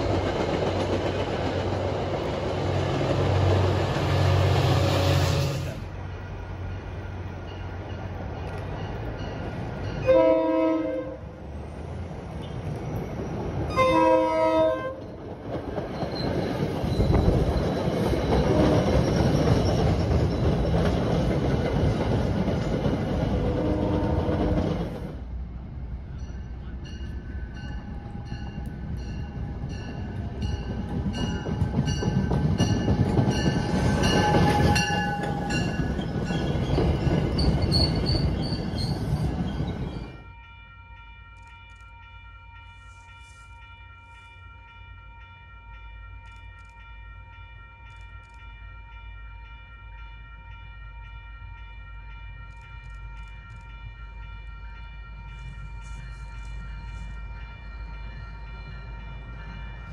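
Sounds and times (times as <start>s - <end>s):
train wheel and rail noise: 0.0s - 59.9s
train horn blasts: 10.0s - 11.3s, 13.7s - 15.1s, 23.5s - 24.6s, 34.0s - 35.7s, 48.0s - 59.9s.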